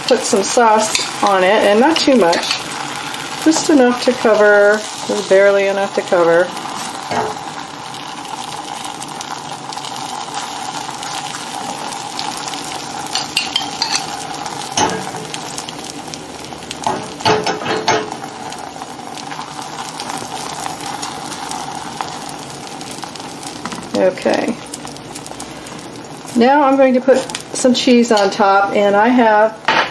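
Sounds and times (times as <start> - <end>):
tortilla sizzling in a frying pan: 0.0 - 29.9
metal spoon scraping a pan: 0.8 - 1.2, 1.9 - 2.8, 13.1 - 14.2.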